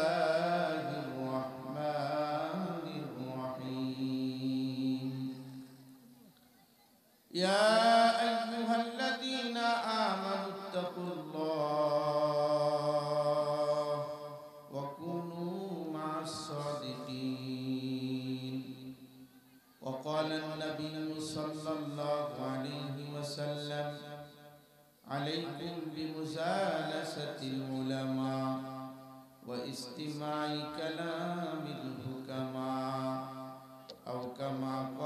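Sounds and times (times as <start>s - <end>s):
man chanting through microphone: 0.0s - 6.0s, 7.3s - 35.0s.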